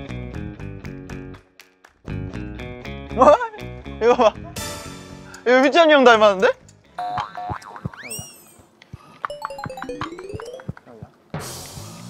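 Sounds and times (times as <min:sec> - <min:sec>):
cartoon boing: 0:07.0 - 0:08.2.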